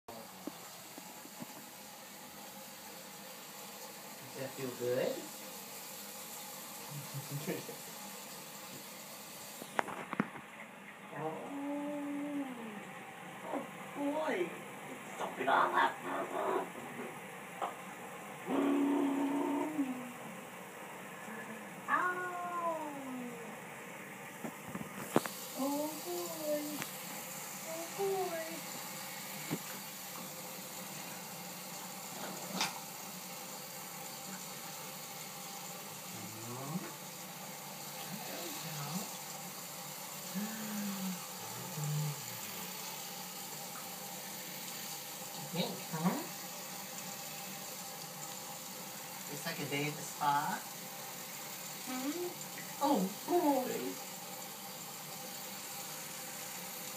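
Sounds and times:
man humming: 11.3s - 12.8s, 18.5s - 20.2s, 40.3s - 42.4s
tap running into sink: 29.4s - 30.3s.

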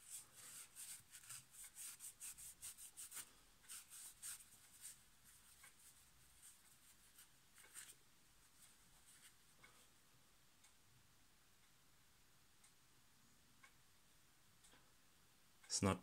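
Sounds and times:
polish pad rubbing on steel: 0.0s - 7.9s.

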